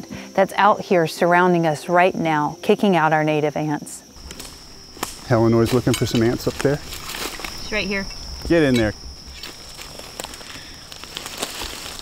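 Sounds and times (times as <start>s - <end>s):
high-pitched insect drone: 0.0s - 12.0s
twigs and leaves crackling: 4.2s - 12.0s.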